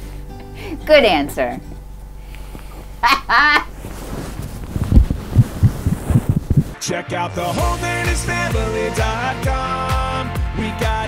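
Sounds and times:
woman laughing: 3.0s - 3.8s
soft low thuds: 3.9s - 6.8s.

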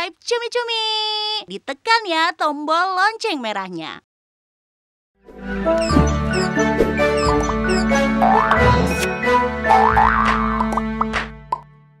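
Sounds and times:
playful logo jingle: 5.7s - 10.1s.

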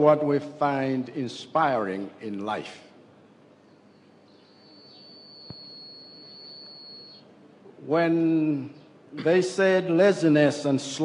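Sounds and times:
high-pitched whine: 4.5s - 7.3s.

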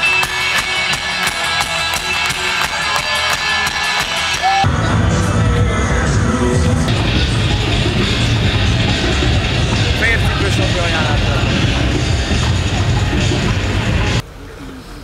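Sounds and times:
steady drum beat: 0.0s - 4.7s, 6.6s - 14.2s
deep bass-heavy rumble: 4.7s - 14.2s.

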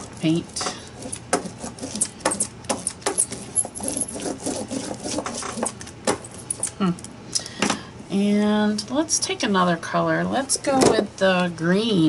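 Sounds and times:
brayer rolling over paper: 0.0s - 5.9s.

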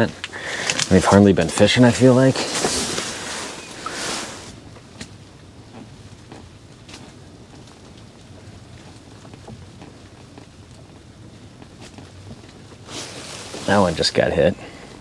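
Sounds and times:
low background noise: 0.0s - 15.0s.

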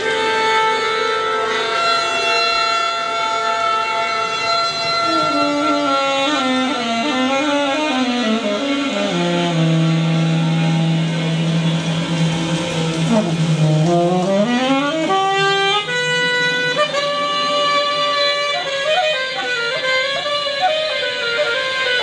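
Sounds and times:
saxophone with electronics: 0.0s - 22.0s.

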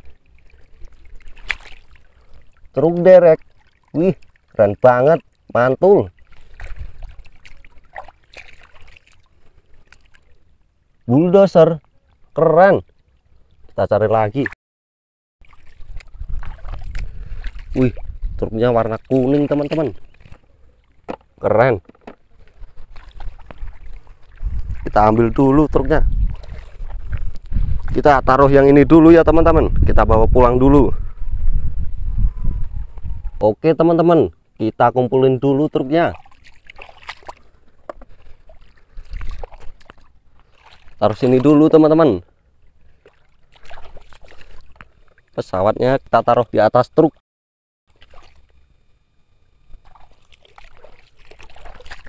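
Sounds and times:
river water sloshing and splashing: 0.0s - 11.1s, 15.4s - 28.0s, 36.0s - 45.4s, 47.9s - 48.6s, 49.8s - 52.0s.

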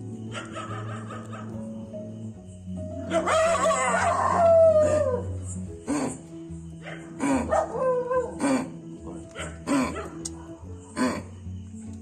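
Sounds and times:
droning background music: 0.0s - 12.0s
dog barking and yelping: 0.3s - 1.7s, 3.0s - 5.3s, 6.8s - 8.4s, 9.1s - 10.5s.

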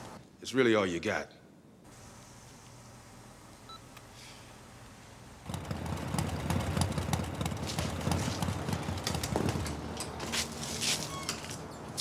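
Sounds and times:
motorcycle engine rumbling: 5.4s - 10.4s.

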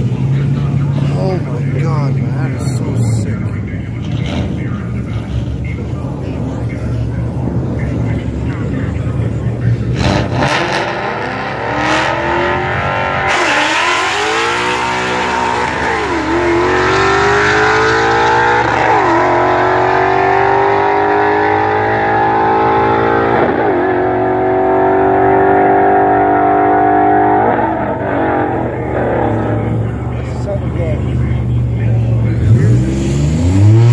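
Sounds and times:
car engine idling: 0.0s - 10.3s, 26.1s - 33.8s
car accelerating through gear changes: 9.8s - 30.2s, 32.2s - 33.9s.

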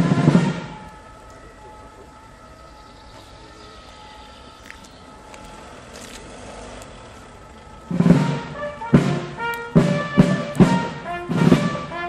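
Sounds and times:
faint steady tones: 0.0s - 12.0s.

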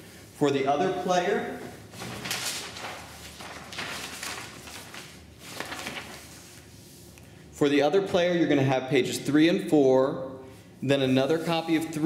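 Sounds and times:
paper rustling and sliding: 1.6s - 7.2s.

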